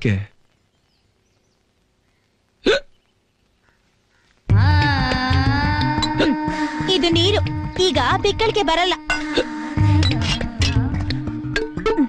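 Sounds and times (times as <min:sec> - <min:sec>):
person hiccuping: 0:02.6 - 0:03.0.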